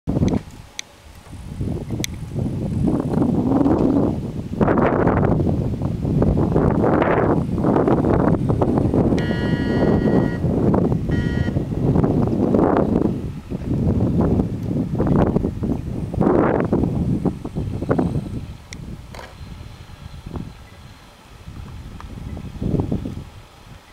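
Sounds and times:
wind buffeting microphone: 0.1s - 23.9s
high-pitched tone: 9.2s - 10.4s, 11.1s - 11.6s.

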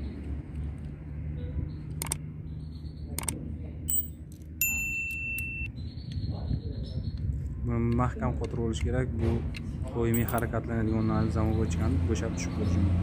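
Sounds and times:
sharp metallic clicks and taps: 1.8s - 2.3s, 3.1s - 6.2s, 7.1s - 10.6s.

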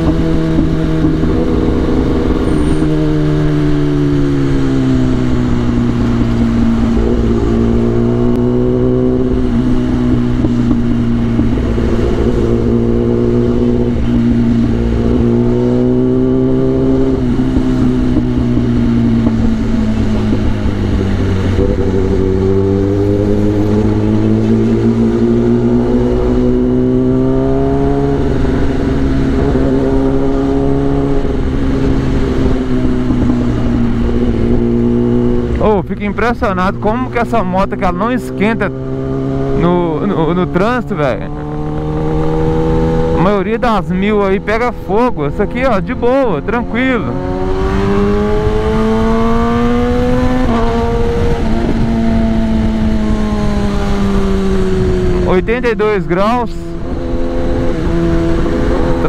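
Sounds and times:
motorcycle engine at low revs: 0.0s - 59.0s
wind noise rushing: 0.0s - 59.0s.

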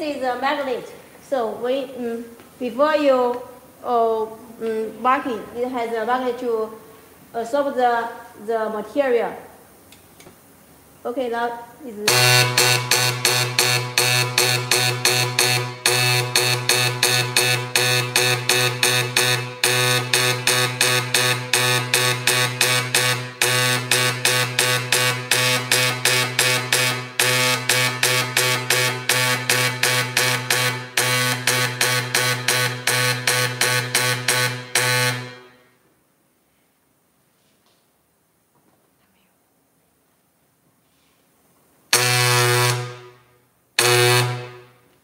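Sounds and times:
steady buzzing tone: 11.2s - 35.9s, 41.9s - 45.0s
marking stylus striking metal: 12.1s - 35.5s.

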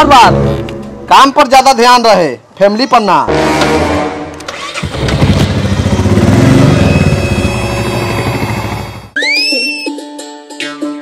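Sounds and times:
motorcycle engine running: 4.8s - 9.2s.

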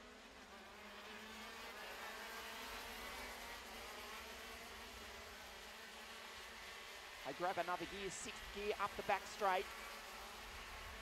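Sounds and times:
kart engines buzzing: 0.0s - 11.0s.

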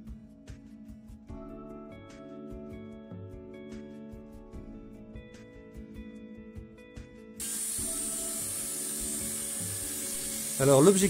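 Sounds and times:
soft background music: 0.0s - 11.0s
circular saw cutting wood: 7.4s - 11.0s.

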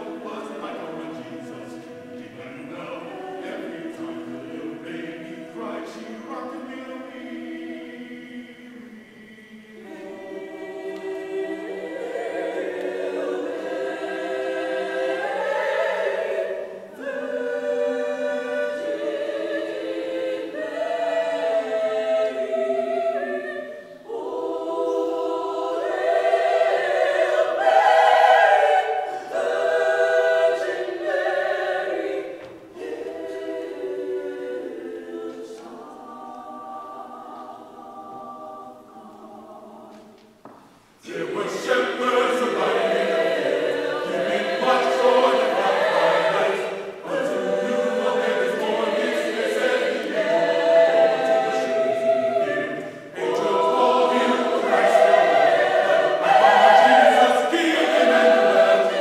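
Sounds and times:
mixed choir singing unaccompanied: 0.0s - 59.0s.

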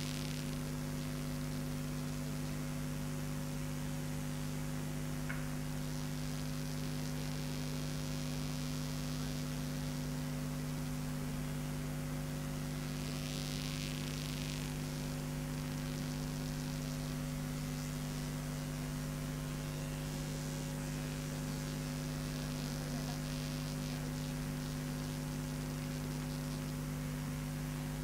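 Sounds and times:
faint hiss: 0.0s - 4.0s, 5.1s - 28.0s
electrical mains hum: 0.0s - 28.0s.

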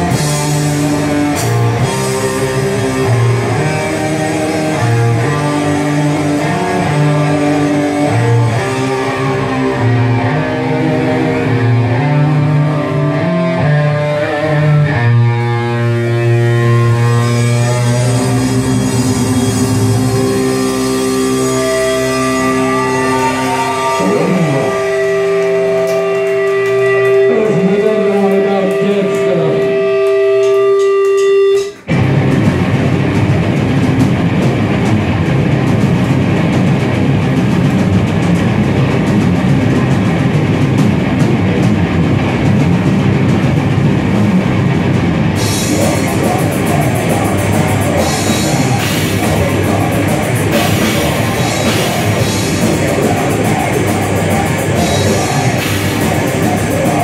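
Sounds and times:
metal band guitar chords: 0.0s - 57.0s.

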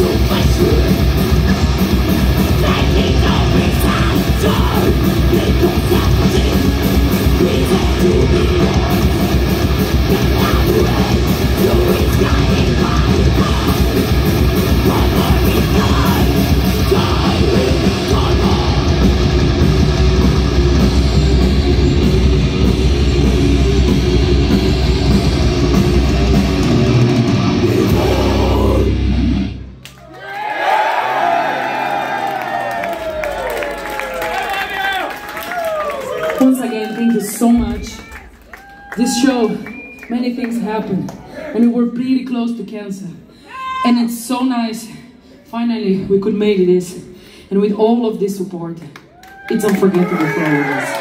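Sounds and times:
thrash metal band playing live: 0.0s - 29.8s
audience cheering and whistling: 29.9s - 40.4s, 49.1s - 51.0s.

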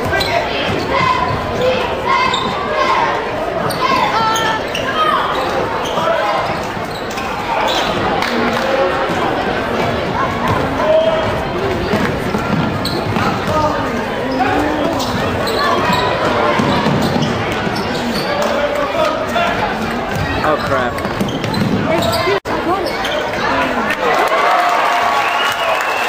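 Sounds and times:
spectators talking and shouting: 0.0s - 26.0s
basketball bouncing on wooden floor: 20.1s - 22.2s.

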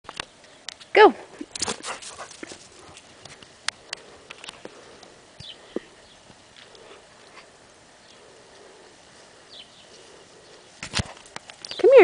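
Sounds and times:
rustling: 1.2s - 12.0s.

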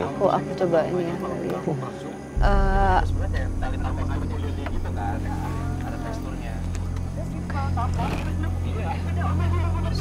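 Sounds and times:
low rumbling drone: 2.4s - 8.6s.

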